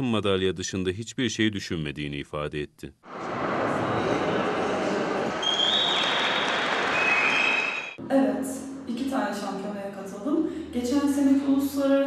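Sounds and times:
audience applauding: 3.1 - 8.0
long high whistle: 5.4 - 8.0.

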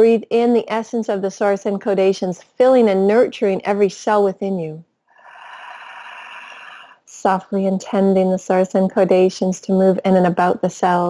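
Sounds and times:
woman breathing slowly: 5.1 - 7.1.

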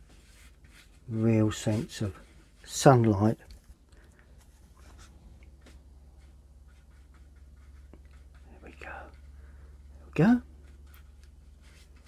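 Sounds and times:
brush scratching on paper: 0.0 - 3.0, 4.4 - 12.0
low steady hum: 0.0 - 12.0.

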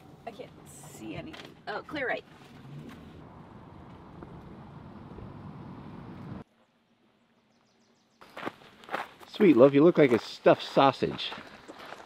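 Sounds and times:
van road and engine noise: 0.0 - 6.5.

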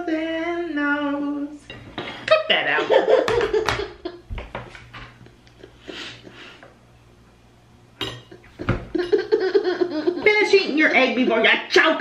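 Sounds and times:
fork clinking on a plate: 8.0 - 8.4.

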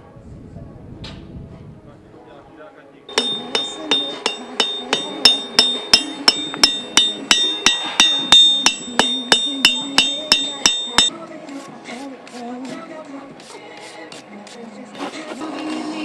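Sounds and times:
hammer striking metal on anvil: 3.1 - 11.1.

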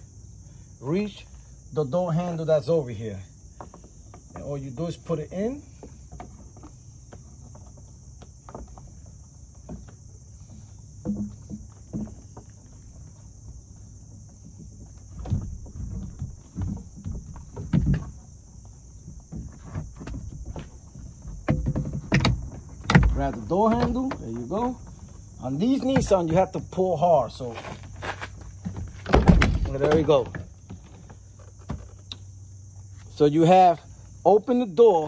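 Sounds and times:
crickets chirping: 0.0 - 35.0.

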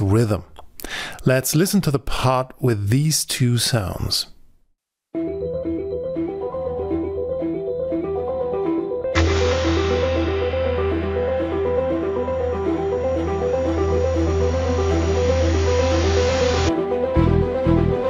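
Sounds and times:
arpeggiated synth pad: 9.2 - 16.7
deep synth bass layer: 9.2 - 16.7.

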